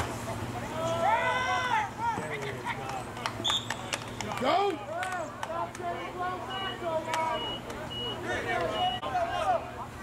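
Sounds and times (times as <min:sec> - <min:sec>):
people calling out: 0:00.6 - 0:02.3, 0:04.4 - 0:10.0.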